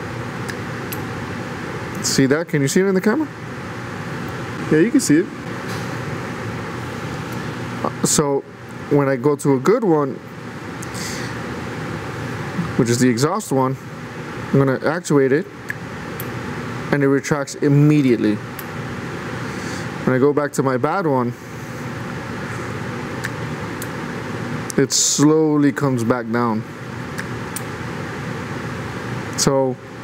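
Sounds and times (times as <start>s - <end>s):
steady background noise: 0.0s - 30.0s
workshop hiss and hum: 0.0s - 30.0s.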